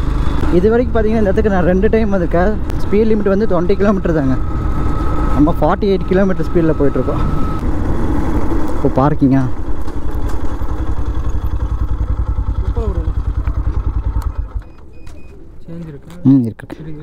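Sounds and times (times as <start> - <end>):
motorcycle engine running slowly: 9.5 - 15.4.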